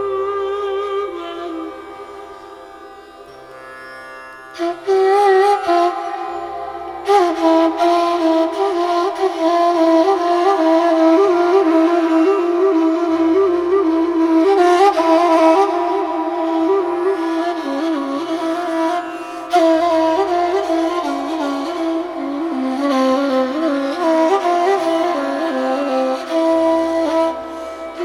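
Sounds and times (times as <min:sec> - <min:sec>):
tanpura drone: 0:00.0 - 0:28.0
ney flute improvising: 0:04.6 - 0:28.0.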